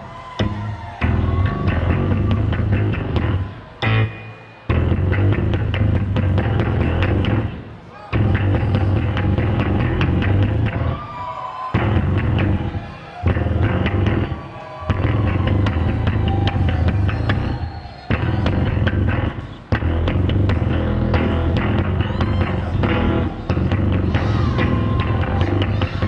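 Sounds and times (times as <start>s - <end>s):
electric bass playing: 0.4s - 7.6s, 8.2s - 10.9s, 11.8s - 12.7s, 13.3s - 14.3s, 15.0s - 26.0s.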